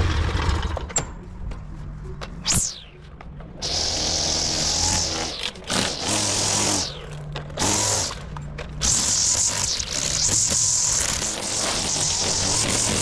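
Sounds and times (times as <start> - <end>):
string trimmer revving: 3.6 - 7.0, 7.6 - 8.2, 8.8 - 13.0
trimmer line hissing through grass: 3.6 - 7.0, 7.6 - 8.2, 8.8 - 13.0.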